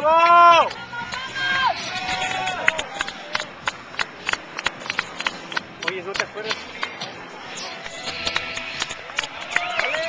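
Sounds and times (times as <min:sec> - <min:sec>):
spectators clapping: 0:02.0 - 0:10.0.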